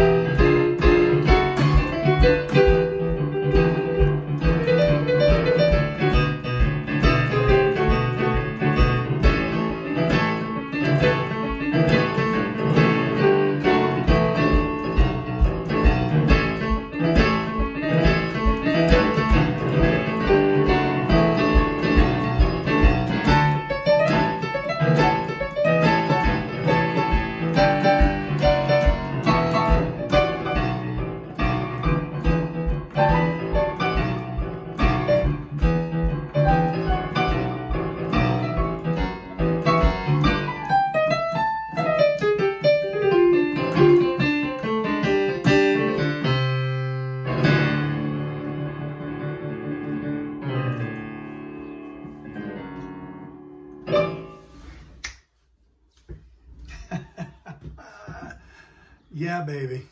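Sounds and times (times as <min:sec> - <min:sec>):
boogie-woogie piano: 0:00.0 - 0:54.8, 0:56.1 - 0:59.9.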